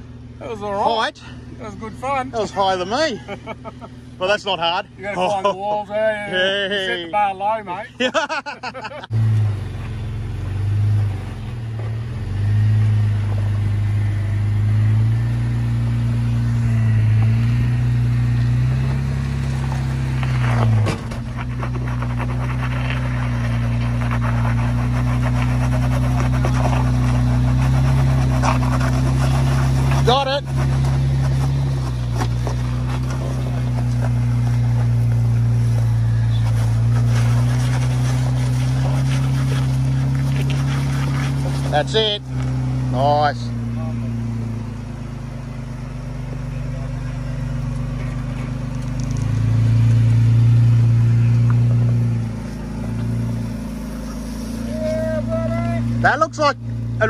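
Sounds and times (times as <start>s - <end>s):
car engine crawling over rocks: 0.0s - 57.0s.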